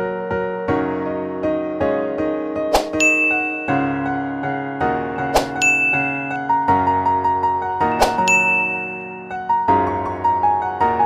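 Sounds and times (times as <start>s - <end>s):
soft keyboard music: 0.0s - 11.0s
click followed by ringing ding: 3.0s - 3.9s, 5.6s - 6.4s, 8.1s - 9.2s.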